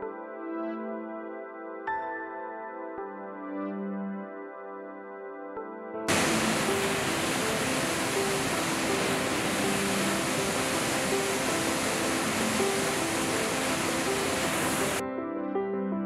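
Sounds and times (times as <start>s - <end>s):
soft background music: 0.0s - 16.0s
waterfall rushing into pool: 6.1s - 15.0s.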